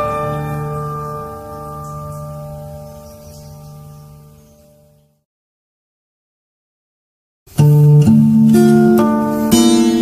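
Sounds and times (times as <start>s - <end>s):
acoustic guitar chord ringing: 0.0s - 5.0s, 7.5s - 10.0s.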